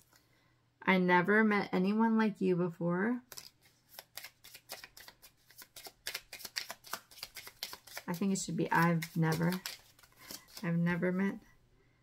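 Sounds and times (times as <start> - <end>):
cards being shuffled: 3.3 - 11.2.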